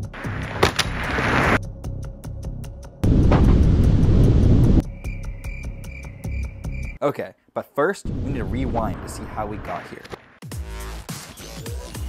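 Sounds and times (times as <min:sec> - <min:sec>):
wind rushing over microphone: 0:03.0 - 0:04.8.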